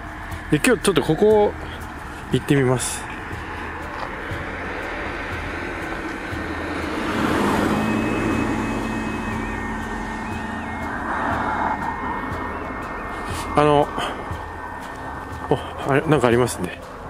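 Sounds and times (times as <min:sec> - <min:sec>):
car engine and tyre rumble: 0:00.0 - 0:17.0.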